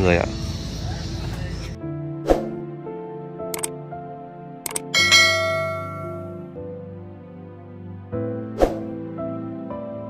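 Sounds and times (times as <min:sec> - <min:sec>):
soft background music: 0:00.0 - 0:10.0
mouse clicks: 0:03.5 - 0:03.8
notification bell ding: 0:05.0 - 0:06.4.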